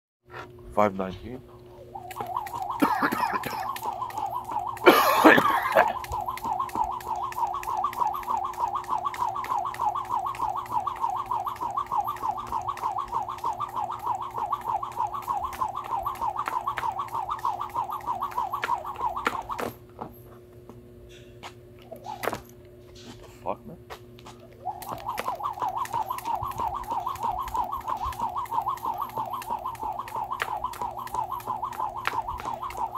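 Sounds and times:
skipping rope whirring and ticking: 1.8 - 20.8, 21.4 - 23.3, 23.9 - 32.9.

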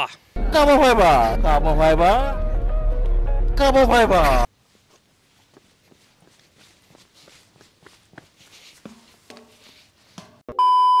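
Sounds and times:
faint footsteps on asphalt: 4.5 - 10.2
steady test-tone beep: 10.5 - 11.0.

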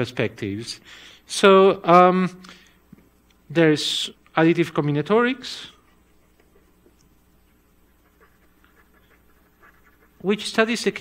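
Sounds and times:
low room hum: 0.0 - 11.0
marker scratching on paper: 7.4 - 11.0.

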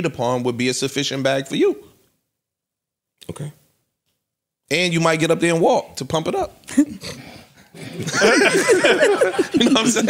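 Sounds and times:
people laughing: 7.7 - 10.0.

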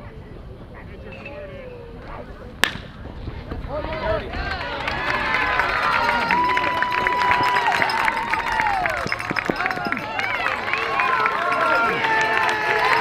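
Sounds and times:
metal bat hitting ball: 2.6 - 2.9
spectators shouting and cheering: 3.7 - 13.0.

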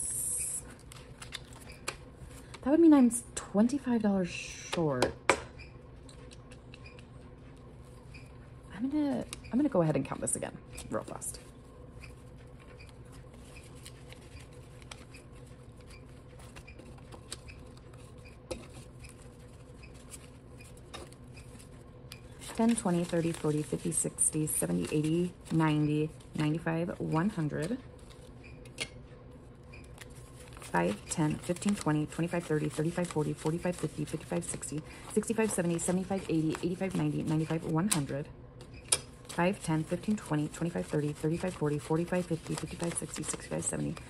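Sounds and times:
low room hum: 0.0 - 44.0
banknotes riffled rustling: 6.1 - 28.4, 29.4 - 44.0.

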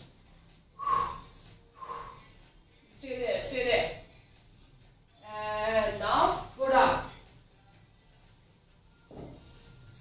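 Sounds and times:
woman breathing: 0.8 - 2.5.

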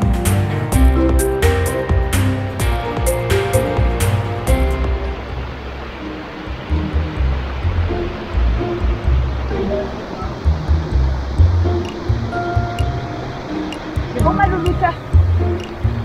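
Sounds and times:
low rumbles: 0.0 - 16.0
soft background music: 0.0 - 16.0
stream rushing over boulders: 0.0 - 16.0.

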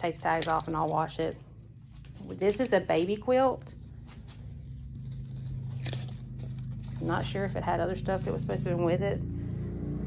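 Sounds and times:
package handling noise: 0.0 - 8.4
plastic crinkle: 0.0 - 8.7
low steady hum: 0.0 - 10.0.

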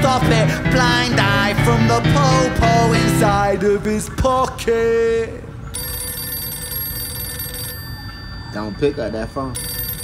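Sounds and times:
telephone ringing: 5.7 - 10.0.

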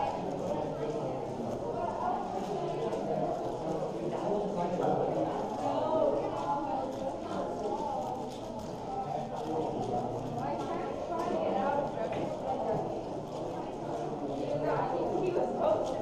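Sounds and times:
murmur of voices: 0.0 - 16.0.

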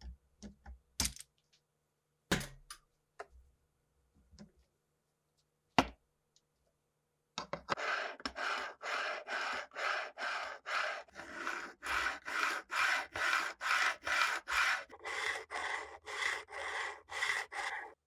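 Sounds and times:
sanding block scraping metal frets: 7.8 - 18.0.

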